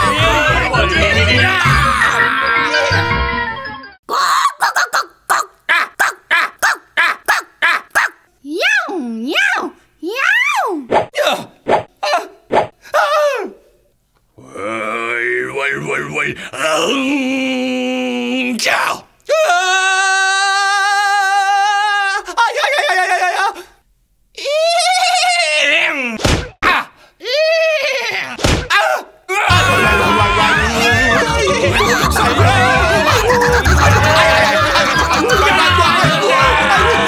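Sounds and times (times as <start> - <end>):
person making animal-like calls: 4.1 - 8.2
person singing long high note: 29.5 - 34.7.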